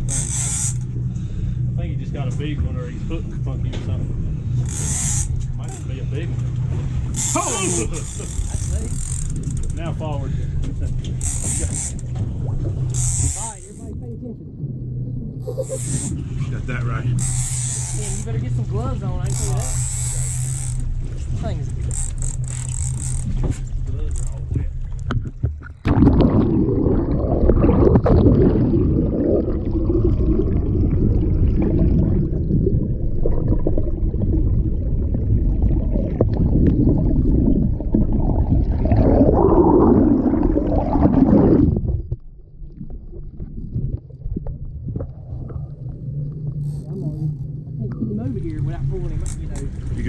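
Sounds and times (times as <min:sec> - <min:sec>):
boat engine idling: 0:00.0 - 0:25.4, 0:45.9 - 0:50.0
muffled underwater rush and gurgle: 0:00.0 - 0:50.0.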